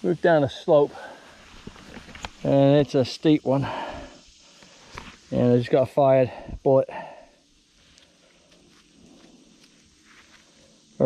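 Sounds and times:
faint rustling: 0.5 - 3.0, 7.6 - 11.0.

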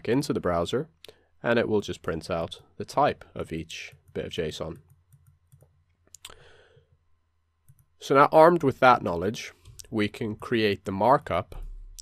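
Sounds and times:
soft breath: 6.2 - 7.0
computer mouse clicks: 7.6 - 7.9.

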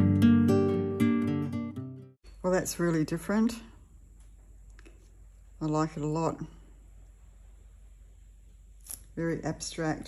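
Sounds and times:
steady low hum: 2.2 - 10.0.

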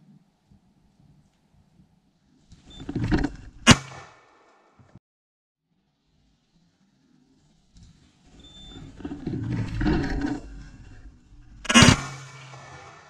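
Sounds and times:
loud shotgun shot: 3.6 - 4.4, 11.6 - 13.0.

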